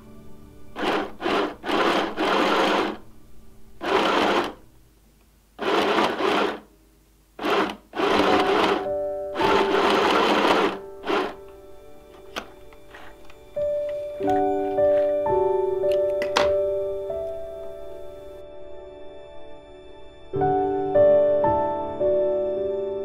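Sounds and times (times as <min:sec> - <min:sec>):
sewing machine stitching: 0:00.8 - 0:03.0, 0:03.8 - 0:04.6, 0:05.6 - 0:06.7, 0:07.4 - 0:11.5.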